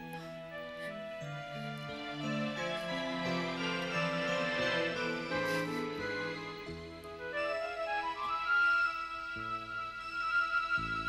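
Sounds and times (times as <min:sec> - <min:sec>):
slow melody of held notes: 0:00.0 - 0:11.0.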